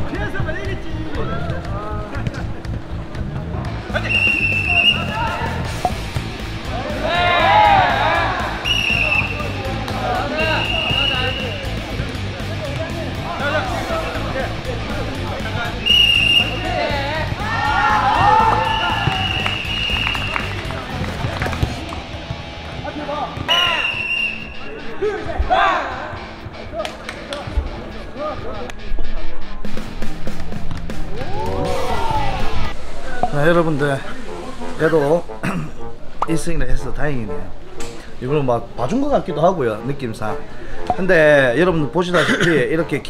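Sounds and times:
background music: 0.0s - 43.0s
players shouting: 3.8s - 5.7s, 6.5s - 12.4s, 13.0s - 21.5s, 22.9s - 27.0s, 31.1s - 32.8s
referee whistle blasts: 4.0s - 5.1s, 8.6s - 9.6s, 10.4s - 11.7s, 15.8s - 16.7s, 18.5s - 20.4s, 23.5s - 24.7s.

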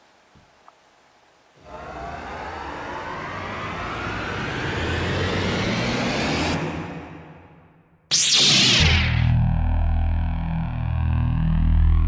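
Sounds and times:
sound effect rising in pitch: 1.6s - 12.0s.

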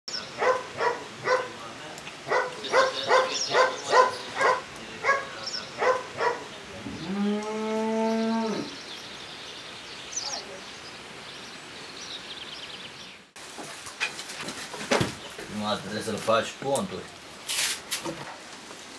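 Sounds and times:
dog barking: 0.4s - 1.6s, 2.2s - 6.5s
cow mooing: 6.8s - 8.8s.

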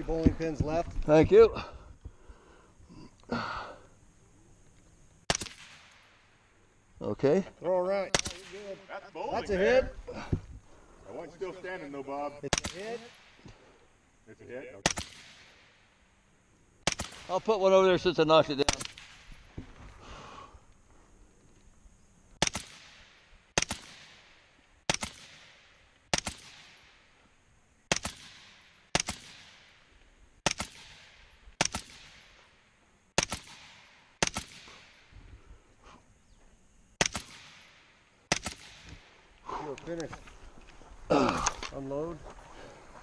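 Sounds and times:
rifle shots with echo: 5.3s - 6.3s, 8.1s - 8.9s, 14.8s - 15.9s, 16.8s - 17.5s, 22.4s - 27.0s, 27.9s - 29.8s, 30.4s - 32.4s, 33.2s - 35.1s, 37.0s - 39.1s.

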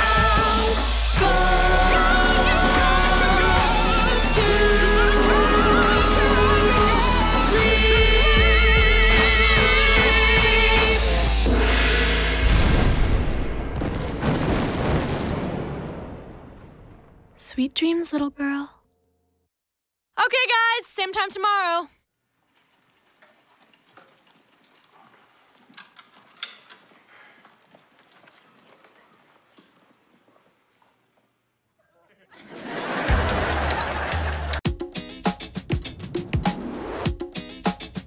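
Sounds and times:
gong crash: 11.3s - 14.0s.

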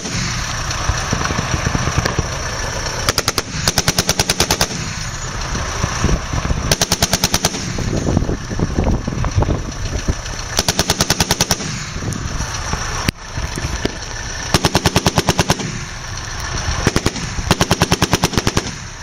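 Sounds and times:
heavy machine gun bursts: 0.0s - 8.4s, 10.2s - 13.0s, 13.9s - 19.0s.

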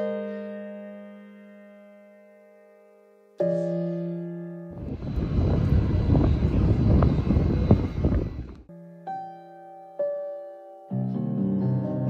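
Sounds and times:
piano chord: 0.0s - 8.0s, 8.6s - 12.0s
train rumbling roar: 4.8s - 8.7s.

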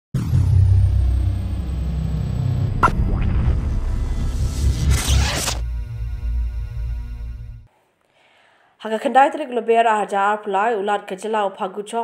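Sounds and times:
high sweep falling in pitch: 0.2s - 7.6s
deep rumble sound effect: 0.2s - 7.7s.

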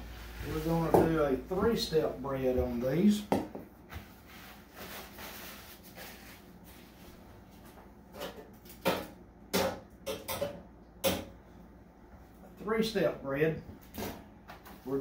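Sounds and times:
kitchen knocks and clatters: 8.1s - 11.4s.

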